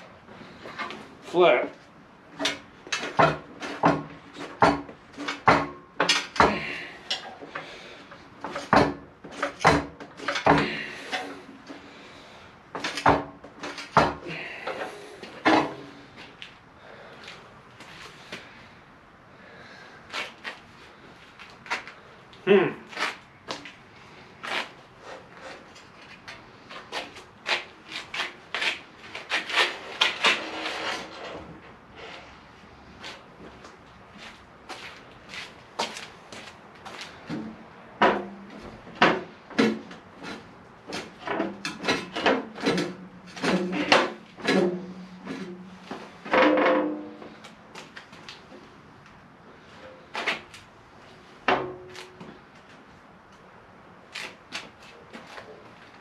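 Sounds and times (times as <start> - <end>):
metal sheet knocks and clanks: 2.4 - 6.7, 8.4 - 10.8, 46.3 - 47.2.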